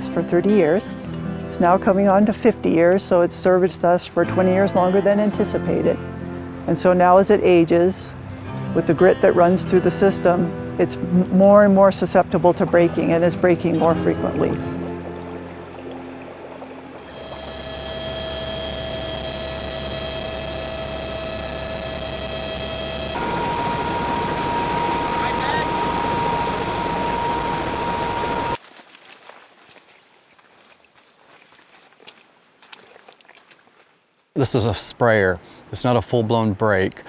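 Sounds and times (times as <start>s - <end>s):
helicopter turbine whine: 11.9s - 28.6s
footsteps on gravel: 28.6s - 34.0s.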